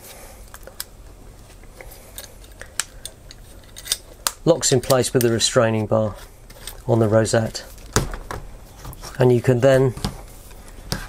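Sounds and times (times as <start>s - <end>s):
handling noise: 6.1s - 11.0s.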